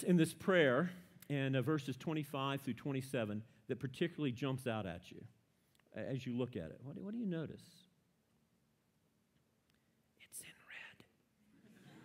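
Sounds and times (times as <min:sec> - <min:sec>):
faint whispered voice: 0:10.2 - 0:11.2.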